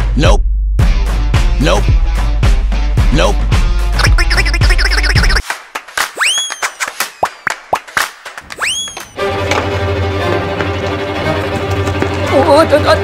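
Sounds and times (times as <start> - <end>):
background music: 0.1 - 6.4, 9.2 - 13.0.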